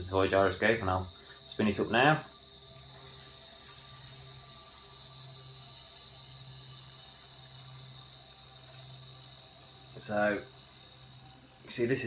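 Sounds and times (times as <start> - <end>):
high-pitched rotor whine: 0.0 - 12.0
toy gyroscope humming: 0.0 - 12.0.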